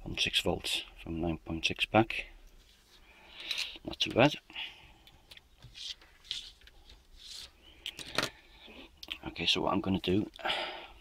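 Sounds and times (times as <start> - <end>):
rubbing and scraping on workbench: 5.6 - 7.6.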